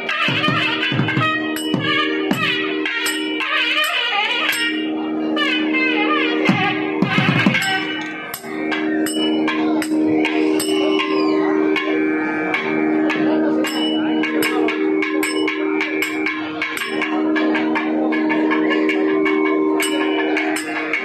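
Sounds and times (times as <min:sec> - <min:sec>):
shruti box drone: 0:00.0 - 0:21.0
small hand cymbals ringing: 0:00.0 - 0:21.0.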